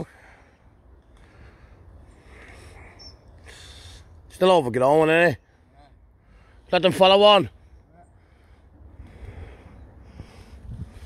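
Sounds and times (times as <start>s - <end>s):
soft short breaths: 0.0s - 4.3s, 7.6s - 11.0s.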